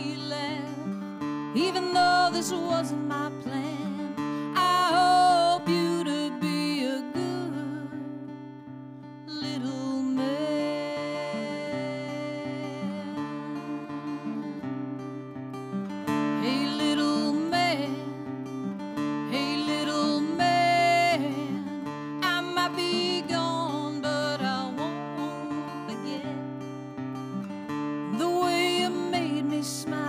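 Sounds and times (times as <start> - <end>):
woman singing: 0.0 - 26.8, 27.7 - 30.0
acoustic guitar: 0.0 - 30.0.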